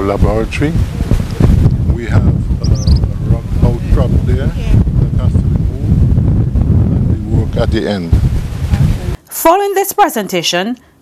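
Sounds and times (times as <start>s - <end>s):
man speaking: 0.0s - 0.8s, 1.9s - 6.0s, 6.8s - 8.2s
wind buffeting microphone: 0.0s - 9.2s
short high chirps: 2.7s - 3.0s.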